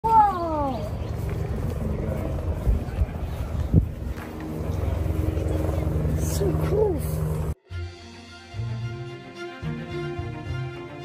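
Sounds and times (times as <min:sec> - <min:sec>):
diesel engine running: 0:00.4 - 0:07.6.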